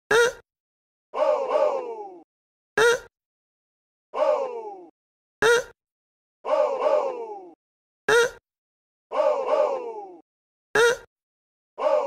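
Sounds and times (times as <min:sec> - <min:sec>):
drawn-out moaning voices: 0:04.2 - 0:04.9, 0:06.5 - 0:07.6, 0:09.1 - 0:10.2.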